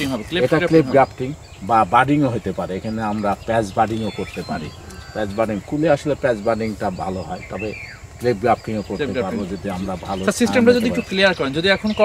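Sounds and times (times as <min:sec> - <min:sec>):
man speaking: 0:00.0 - 0:12.0.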